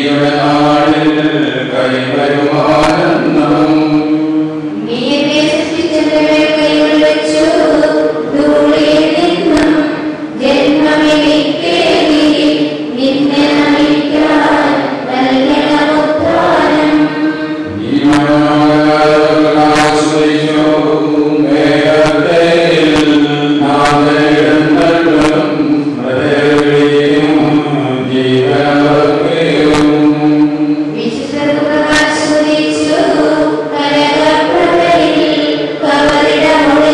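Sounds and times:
group singing a hymn: 0.0s - 36.9s
sustained tone: 0.0s - 36.9s.

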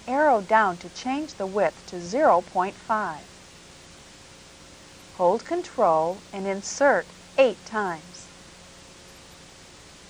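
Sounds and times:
tape hiss: 0.0s - 10.0s
woman speaking: 0.1s - 3.3s, 5.2s - 8.3s.

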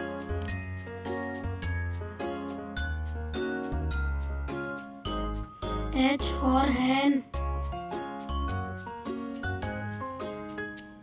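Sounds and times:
tinkling children's tune: 0.0s - 11.0s.

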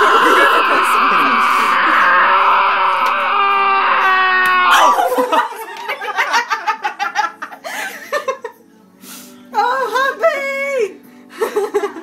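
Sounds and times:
woman wailing: 0.0s - 5.8s
woman laughing hysterically: 4.1s - 8.4s, 11.4s - 12.0s.

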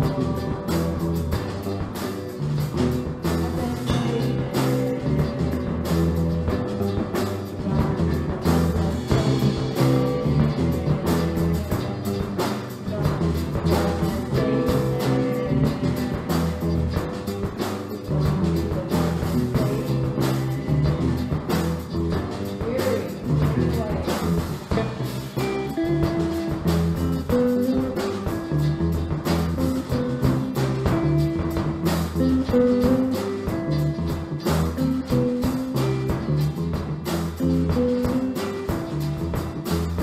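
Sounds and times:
rock band playing live: 0.0s - 40.0s.

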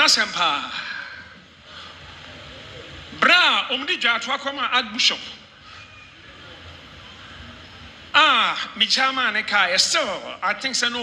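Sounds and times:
man speaking into a microphone: 0.0s - 1.1s, 3.1s - 5.4s, 8.1s - 11.0s
sound system hum and hiss: 0.0s - 11.0s
faint distant voices: 0.8s - 3.2s, 5.3s - 8.2s.

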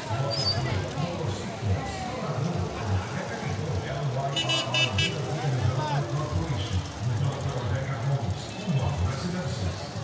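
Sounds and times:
street crowd murmur: 0.0s - 10.0s
vehicle horn toots: 4.4s - 5.2s.

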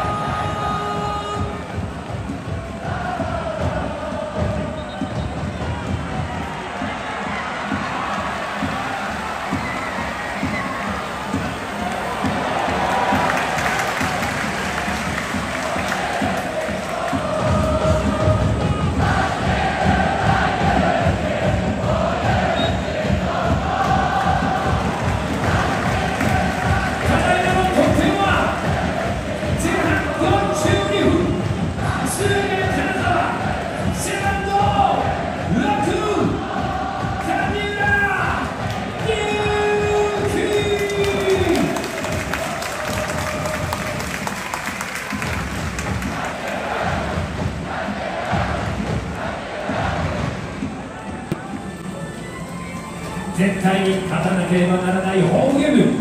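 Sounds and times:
crowd chanting in unison: 0.0s - 51.3s.

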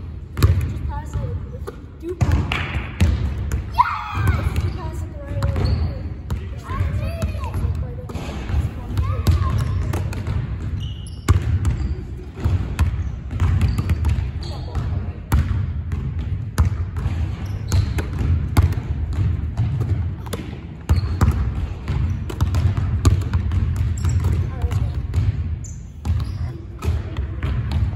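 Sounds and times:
basketballs bouncing on wooden floor: 0.0s - 27.9s.

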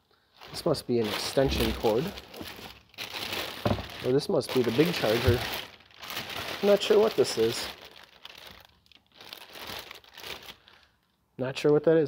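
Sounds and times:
plastic bag crinkling: 0.3s - 11.1s.

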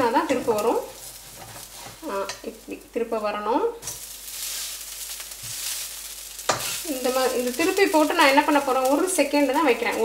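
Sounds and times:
batter sizzling in frying pan: 0.0s - 10.0s.

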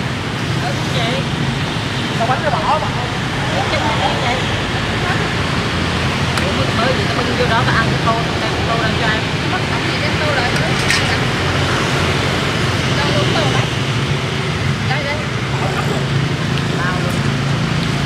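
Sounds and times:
street traffic: 0.0s - 18.0s
people talking: 0.6s - 1.4s, 2.1s - 12.0s, 12.7s - 13.9s, 14.6s - 18.0s.

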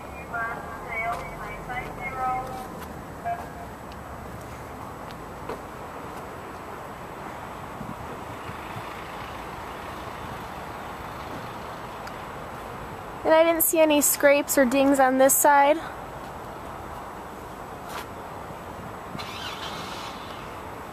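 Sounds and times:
person talking: 0.0s - 3.8s, 13.2s - 15.9s
outdoor background hiss: 0.0s - 20.9s.

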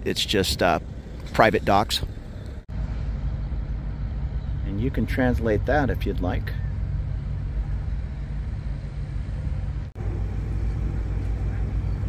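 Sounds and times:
low outdoor rumble: 0.0s - 12.0s.

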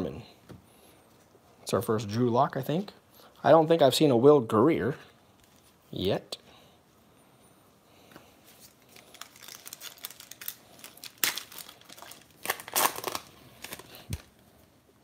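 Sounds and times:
crinkling of card wrappers: 8.4s - 14.8s.

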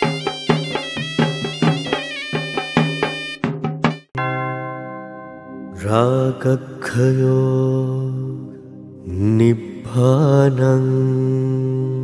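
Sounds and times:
man chanting: 5.8s - 12.0s.

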